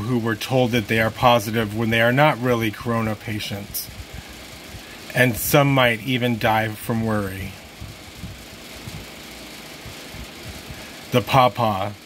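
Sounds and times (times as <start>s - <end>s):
faint hiss: 0.0s - 12.0s
low steady rumble: 0.0s - 12.0s.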